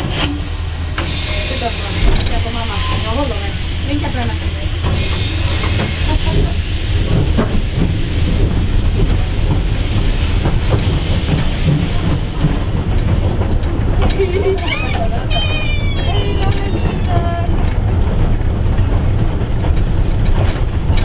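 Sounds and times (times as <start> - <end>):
steam hissing: 0.0 - 14.0
steam locomotive rumble: 0.0 - 21.0
clanks and knocks: 10.4 - 21.0.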